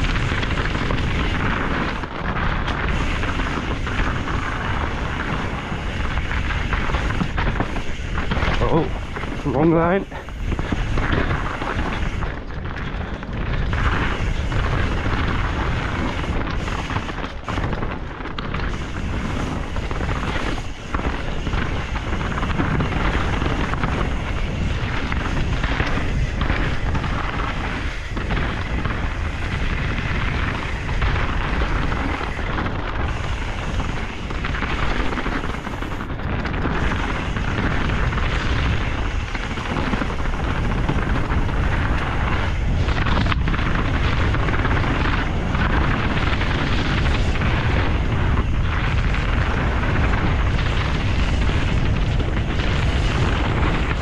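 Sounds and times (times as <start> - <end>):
bike rattling: 0.0 - 54.0
wheels knocking on rocks: 0.0 - 54.0
wind on microphone: 0.0 - 54.0.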